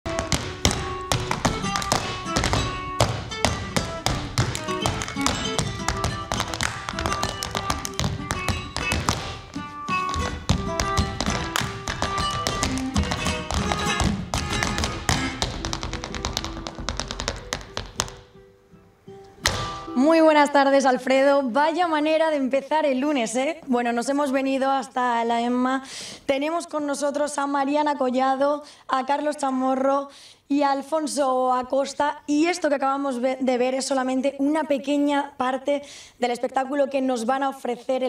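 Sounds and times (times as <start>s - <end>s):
dance shoes tapping on wood: 0.1s - 18.3s.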